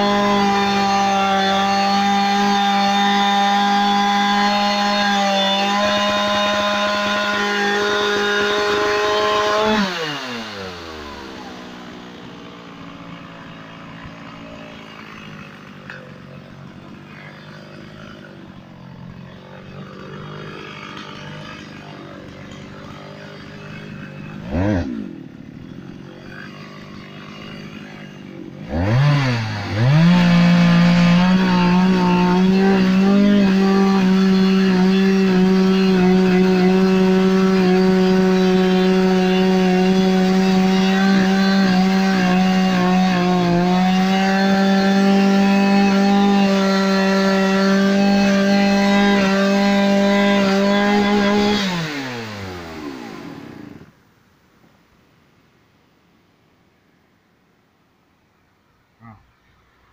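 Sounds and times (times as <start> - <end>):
chainsaw revving and idling: 0.0 - 54.0.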